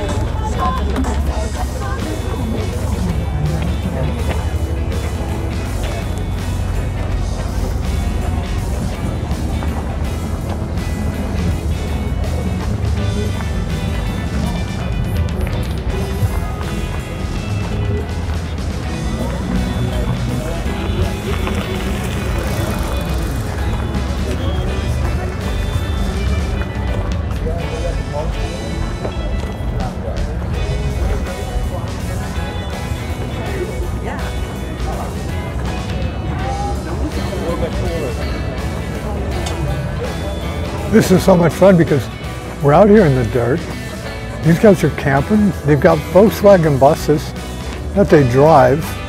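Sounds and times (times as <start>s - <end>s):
background music: 0.0s - 49.0s
voices: 0.0s - 49.0s.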